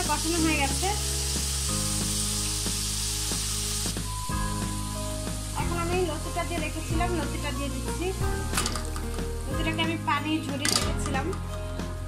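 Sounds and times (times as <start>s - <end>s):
prawns sizzling in a wok: 0.0s - 12.0s.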